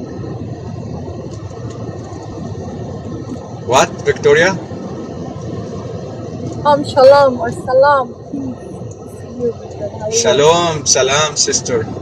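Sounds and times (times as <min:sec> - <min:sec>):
low background rumble and hiss: 0:00.0 - 0:12.0
man's voice: 0:03.7 - 0:04.6, 0:10.1 - 0:12.0.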